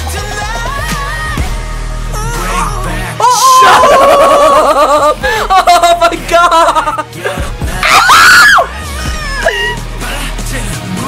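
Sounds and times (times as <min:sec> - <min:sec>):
music track playing: 0:00.0 - 0:11.0
woman screaming: 0:03.2 - 0:04.5, 0:07.8 - 0:09.8.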